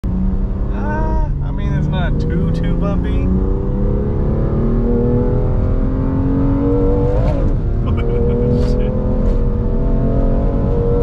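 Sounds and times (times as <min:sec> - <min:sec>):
car engine drone: 0:00.0 - 0:11.0
road noise: 0:00.0 - 0:11.0
person speaking: 0:00.7 - 0:03.3, 0:07.9 - 0:08.9.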